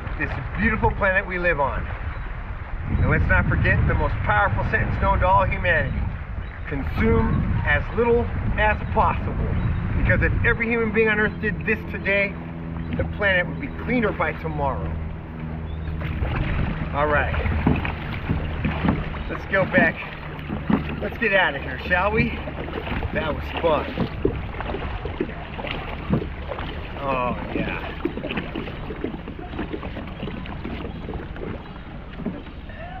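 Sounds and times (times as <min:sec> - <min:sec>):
water lapping around kayak: 0:00.0 - 0:33.0
wind on microphone: 0:00.0 - 0:33.0
paddle being handled: 0:14.8 - 0:33.0.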